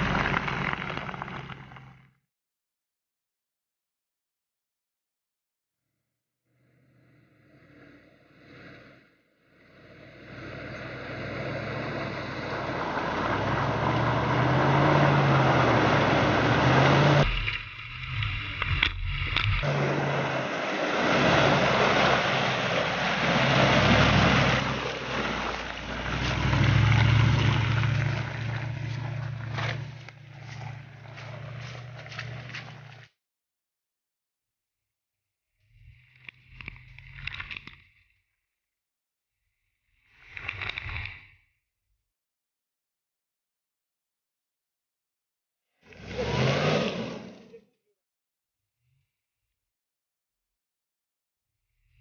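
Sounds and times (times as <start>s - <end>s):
mud and water splashing: 0.0s - 1.9s, 10.6s - 33.1s
truck engine revving: 0.0s - 2.0s, 9.8s - 33.0s, 45.9s - 47.6s.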